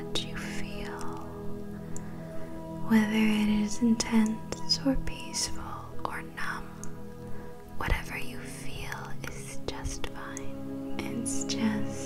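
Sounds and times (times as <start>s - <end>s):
person whispering: 0.0s - 1.4s, 7.8s - 12.0s
soft meditation music: 0.0s - 12.0s
faint clicks: 0.8s - 1.3s, 1.9s - 2.1s.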